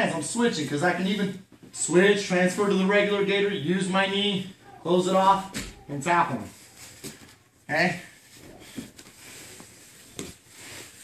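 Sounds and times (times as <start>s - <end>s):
bodies rustling on foam mats: 8.1s - 11.0s.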